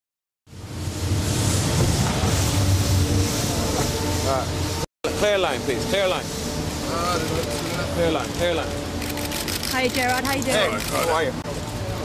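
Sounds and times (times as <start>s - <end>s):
low traffic rumble: 0.5s - 12.0s
street hiss: 0.5s - 12.0s.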